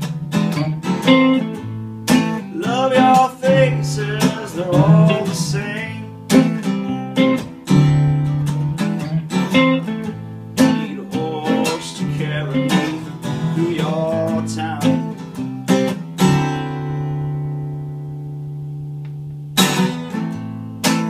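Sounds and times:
acoustic guitar strumming: 0.0 - 21.0
electric guitar lead melody: 0.0 - 21.0.

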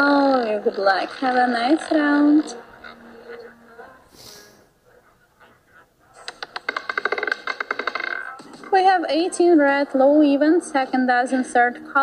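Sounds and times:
roulette ball clattering: 6.3 - 9.0.

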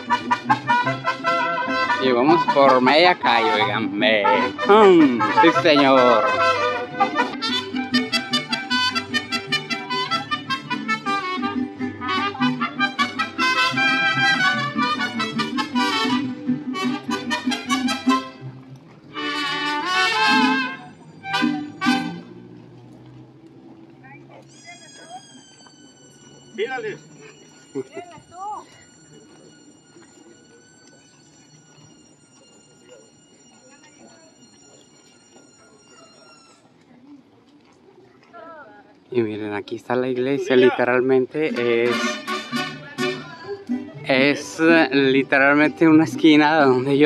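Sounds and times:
mariachi band playing: 0.0 - 36.8, 39.1 - 47.0.

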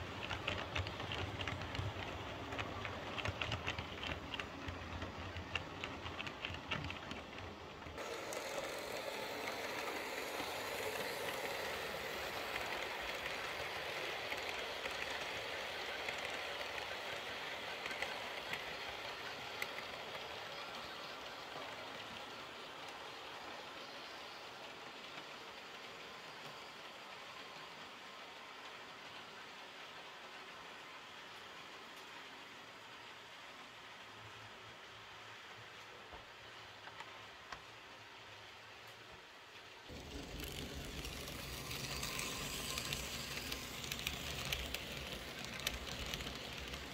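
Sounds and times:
faint clicks over rails: 0.0 - 32.4, 35.6 - 37.9, 38.8 - 46.9
model train rolling rumble: 0.0 - 32.4, 39.8 - 46.9.

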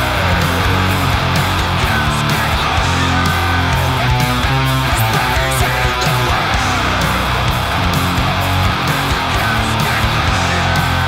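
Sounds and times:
heavy metal electric guitar riff: 0.0 - 11.0.

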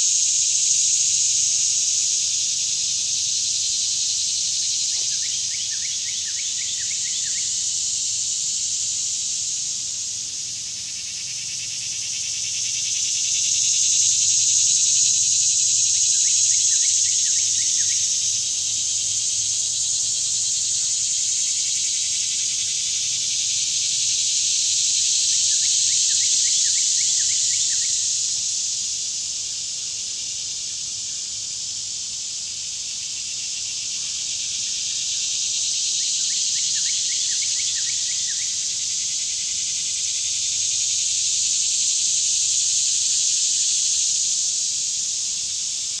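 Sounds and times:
insects chorus: 0.0 - 46.0.

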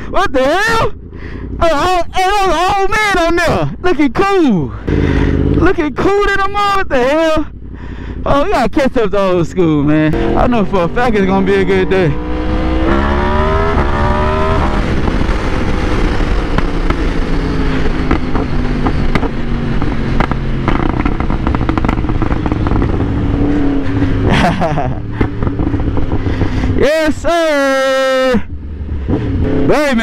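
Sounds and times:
motorcycle engine accelerating: 0.0 - 3.8, 4.4 - 30.0
loud wind rush: 10.2 - 24.3.

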